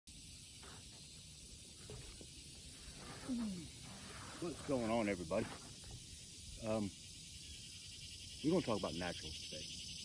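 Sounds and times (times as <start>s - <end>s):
high outdoor hiss: 0.1s - 10.0s.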